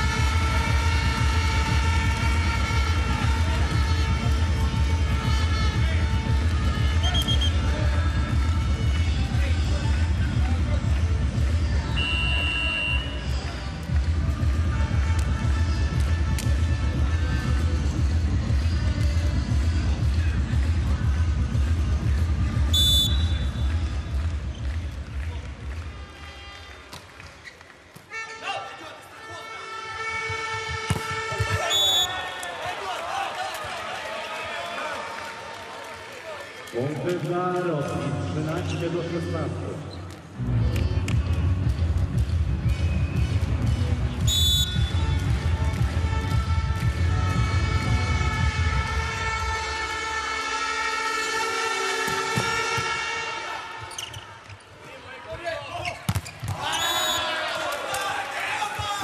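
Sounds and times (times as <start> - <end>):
arena music with heavy beat: 0.0 - 11.9
volleyball rally: 0.0 - 39.2, 39.9 - 50.2, 51.6 - 59.0
crowd: 0.0 - 59.0
referee whistle: 7.0 - 7.7, 11.9 - 13.3, 22.7 - 23.8, 30.0 - 32.3, 44.2 - 45.1, 55.8 - 57.4.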